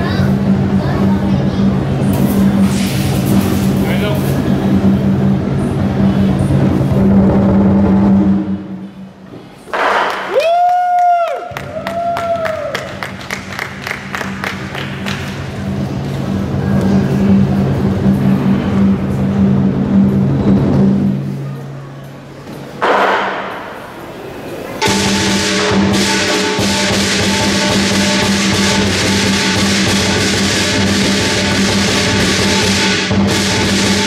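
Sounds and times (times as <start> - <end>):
drum cymbals and gong ensemble: 0.0 - 10.1, 15.6 - 21.8, 24.8 - 34.0.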